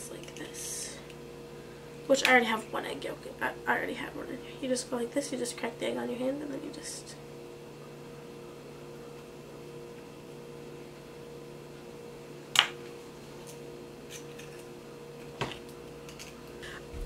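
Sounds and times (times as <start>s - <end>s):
low electrical hum: 0.0s - 17.0s.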